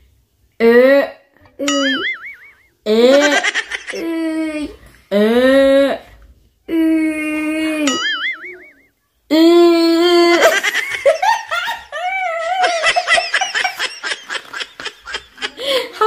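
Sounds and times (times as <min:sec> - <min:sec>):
woman laughing: 0:10.2 - 0:16.0.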